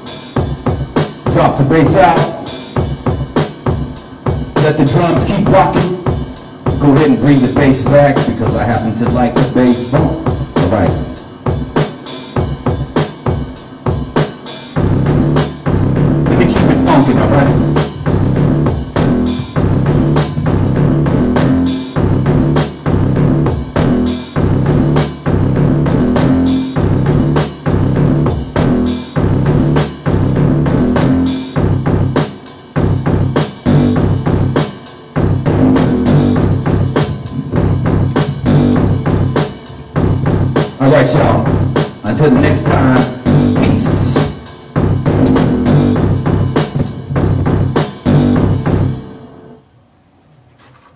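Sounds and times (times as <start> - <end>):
drum machine beat: 0.0 - 49.1
bassline: 0.0 - 49.6.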